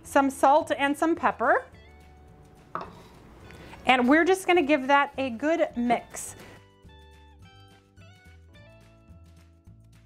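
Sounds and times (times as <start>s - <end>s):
utensil knocking glass bowl: 2.7s - 3.2s.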